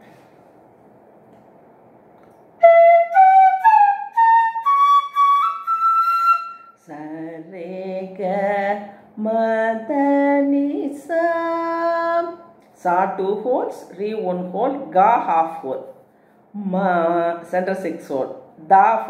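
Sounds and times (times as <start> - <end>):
bamboo flute ascending scale: 2.6 - 6.8
woman half singing: 6.8 - 12.5.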